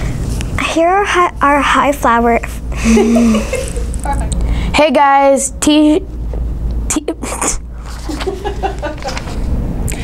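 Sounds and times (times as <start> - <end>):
boy's stifled laughter: 2.8 - 4.0, 8.1 - 9.3.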